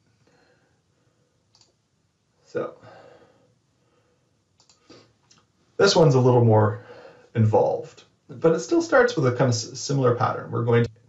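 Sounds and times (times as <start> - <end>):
faint short clicks: 1.5 - 1.7, 4.6 - 5.5.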